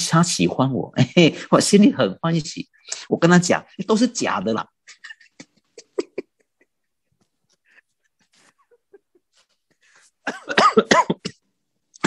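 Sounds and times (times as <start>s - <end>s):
laughter: 4.8s - 9.6s
man coughing: 10.2s - 11.5s.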